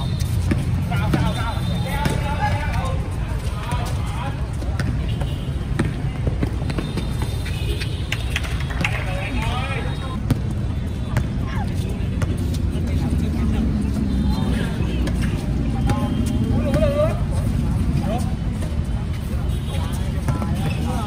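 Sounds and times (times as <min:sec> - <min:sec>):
feet on concrete court: 0:00.0 - 0:21.0
shouts and chatter: 0:13.1 - 0:21.0.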